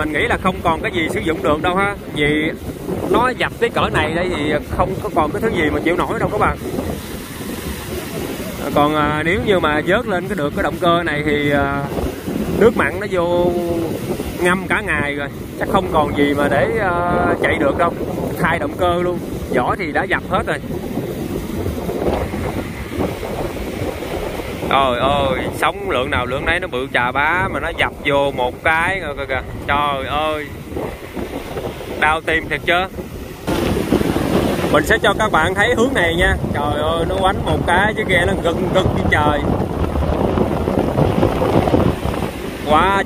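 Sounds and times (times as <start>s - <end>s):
surf breaking on rocky shore: 0.0s - 43.0s
wind rumbling on microphone: 0.0s - 43.0s.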